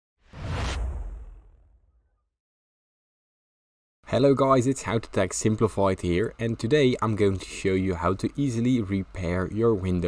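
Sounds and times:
whoosh: 0.2s - 2.2s
deep low boom: 0.4s - 2.0s.

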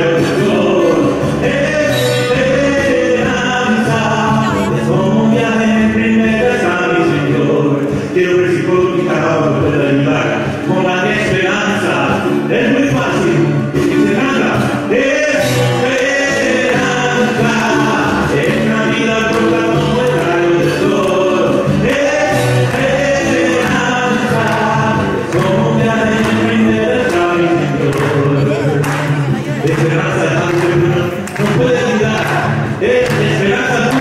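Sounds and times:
guitar playing: 0.0s - 34.0s
man singing long held notes: 0.0s - 34.0s
musical accompaniment: 0.0s - 34.0s.

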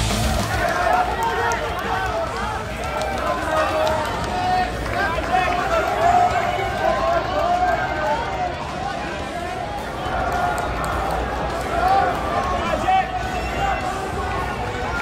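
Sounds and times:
spectators yelling and cheering: 0.0s - 15.0s.

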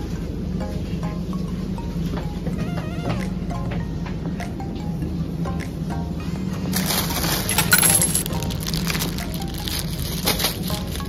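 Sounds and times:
background music: 0.0s - 11.0s
plastic bag crinkling: 6.8s - 11.0s.

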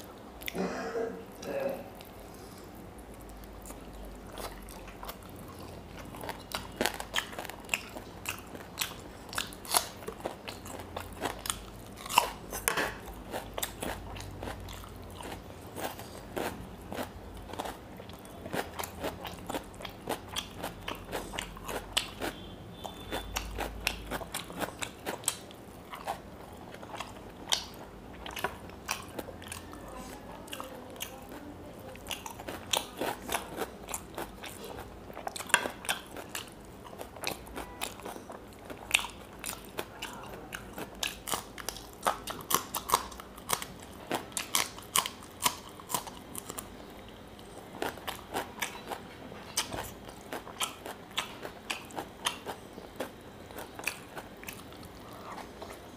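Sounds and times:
chewing crunchy fried fish: 1.3s - 55.9s.

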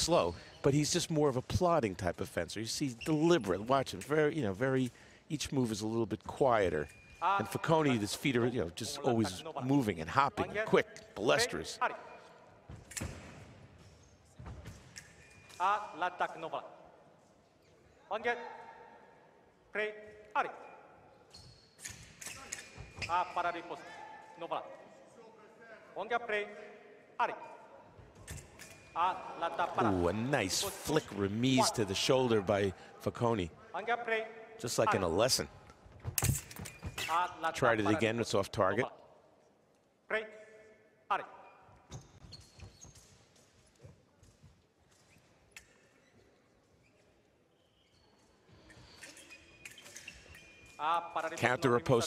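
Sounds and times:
fencing blades clicking: 21.8s - 22.8s, 48.7s - 51.4s.

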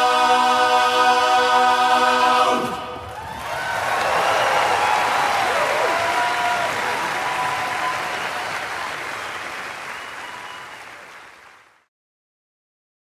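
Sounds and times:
audience applauding: 3.0s - 11.9s.

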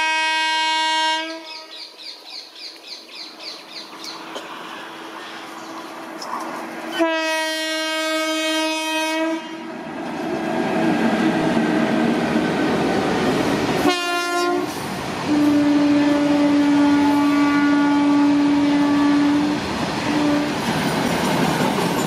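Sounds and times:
train horn: 0.0s - 1.8s, 6.9s - 9.8s, 13.8s - 20.6s
train wheels on rail: 1.5s - 22.0s.

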